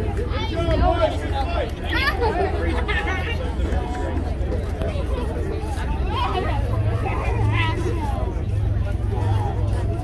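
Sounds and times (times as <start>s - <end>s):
spectator chatter: 0.0s - 10.0s.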